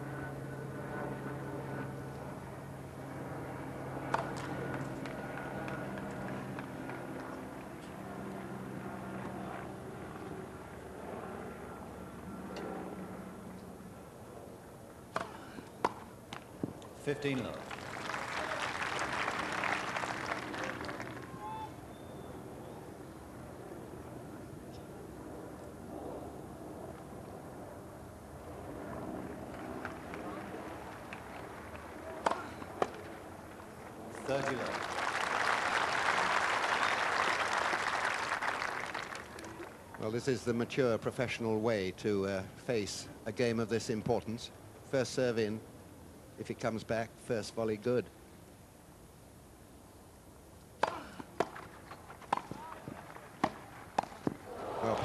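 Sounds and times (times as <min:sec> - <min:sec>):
racket hitting tennis ball: 0:15.1 - 0:16.0, 0:32.2 - 0:33.0, 0:50.8 - 0:55.0
crowd applause: 0:17.4 - 0:21.6, 0:34.2 - 0:39.8, 0:52.6 - 0:55.0
low crowd murmur: 0:54.4 - 0:55.0.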